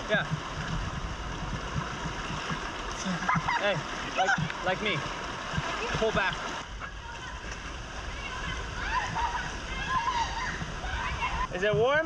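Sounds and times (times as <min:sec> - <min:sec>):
water sloshing around wading person: 0:00.0 - 0:11.4
fast-flowing river rushing: 0:00.0 - 0:11.5.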